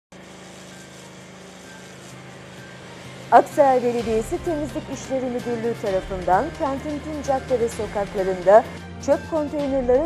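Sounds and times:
water jet spraying into metal bin: 0:00.1 - 0:08.6
pressure washer motor hum: 0:00.1 - 0:10.0.

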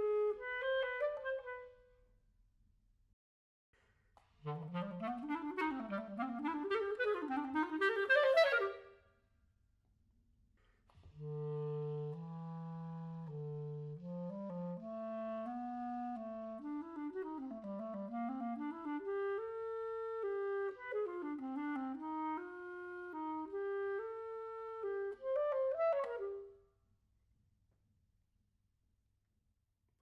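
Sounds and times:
clarinet playing: 0:00.0 - 0:01.8, 0:04.4 - 0:08.9, 0:11.2 - 0:26.6.

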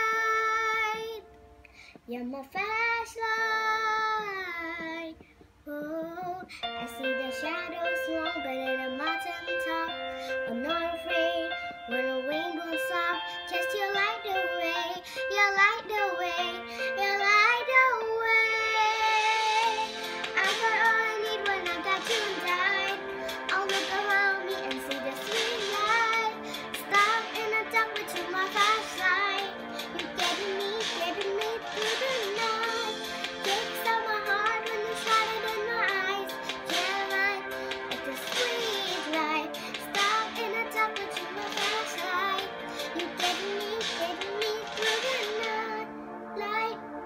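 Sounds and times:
girl singing pop ballad: 0:00.0 - 0:47.0
piano: 0:00.0 - 0:47.0.

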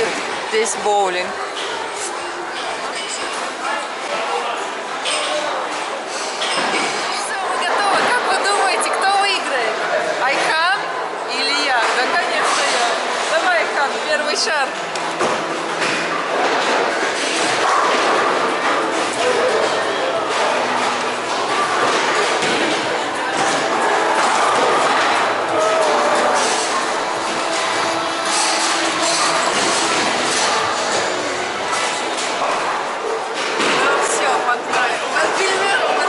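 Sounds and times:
many voices: 0:00.0 - 0:36.0
background music: 0:23.8 - 0:32.1.

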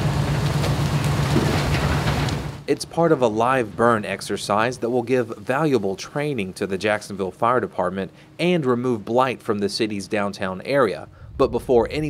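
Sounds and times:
low engine hum: 0:00.0 - 0:02.7, 0:10.6 - 0:12.0
rushing flames and spray: 0:00.0 - 0:02.7, 0:03.3 - 0:06.4, 0:10.9 - 0:12.0.

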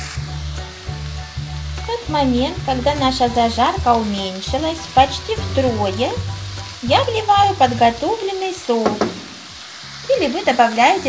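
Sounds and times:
vegetables sizzling in oil: 0:00.0 - 0:11.0.

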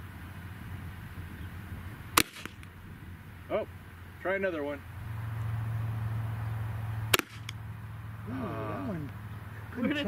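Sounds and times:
shotgun shot: 0:02.2 - 0:02.7, 0:07.1 - 0:07.6.

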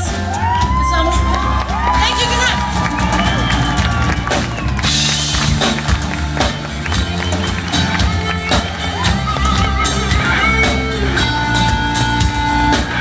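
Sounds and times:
bass guitar: 0:00.0 - 0:13.0
drum kit: 0:00.0 - 0:13.0
electric guitar: 0:00.0 - 0:13.0.

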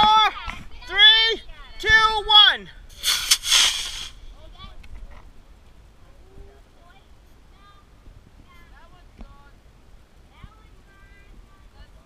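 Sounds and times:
sharp crack: 0:02.9 - 0:04.3
rocket motor hiss: 0:02.9 - 0:04.4.

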